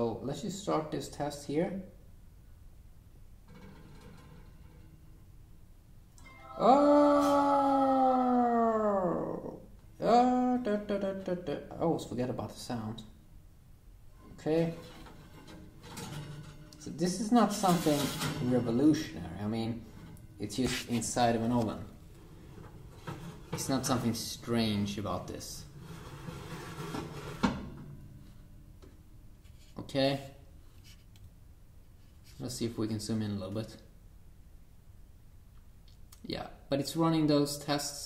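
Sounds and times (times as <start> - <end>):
oven humming: 2.5 - 13.2, 14.0 - 29.4.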